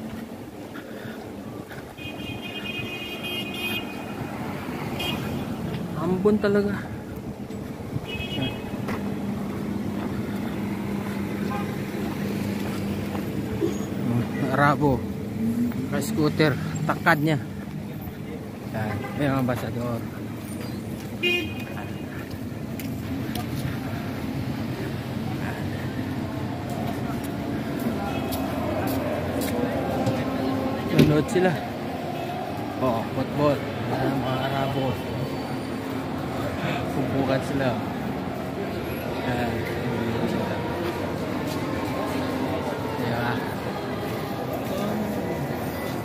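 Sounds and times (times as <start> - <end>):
cars on a wet road: 0.0 - 46.0
crowd noise: 0.0 - 46.0
steady traffic: 0.0 - 46.0.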